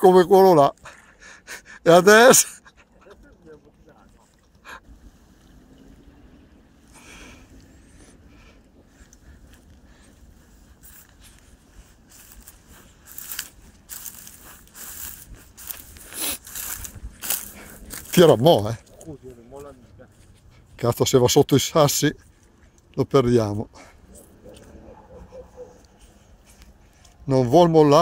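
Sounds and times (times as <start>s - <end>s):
footsteps on dry grass and stones: 8.8s - 28.0s.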